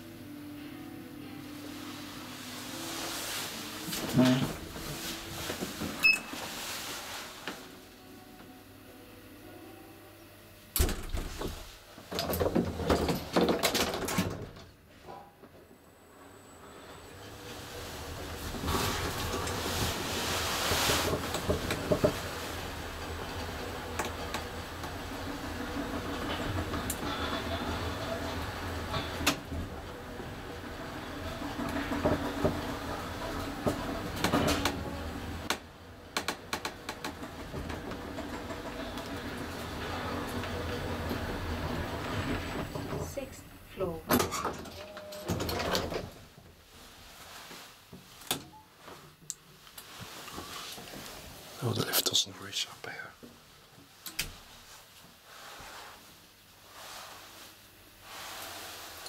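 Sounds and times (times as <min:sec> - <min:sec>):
elevator clunks and knocks: 0:10.8 - 0:15.3
elevator car running in shaft: 0:10.8 - 0:46.3.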